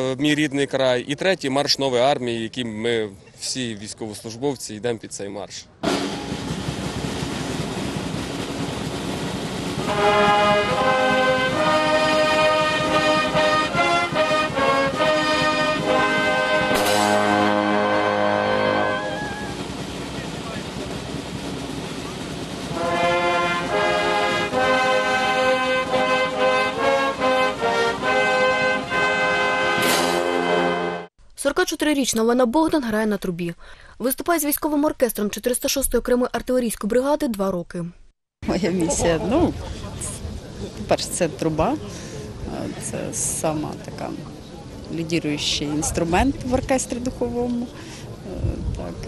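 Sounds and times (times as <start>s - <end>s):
cymbal crash: 5.8s - 8.5s, 16.7s - 17.8s, 29.8s - 30.4s
brass band playing a march: 5.8s - 31.1s.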